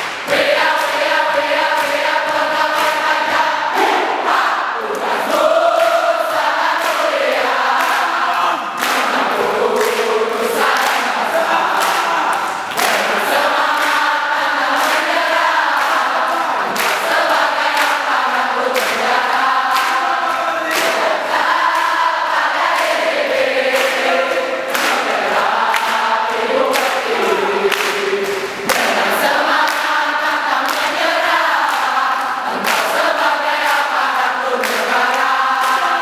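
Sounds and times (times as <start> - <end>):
crowd clapping in time: 0.0 - 4.0, 4.8 - 36.0
crowd singing cheer song: 0.0 - 36.0.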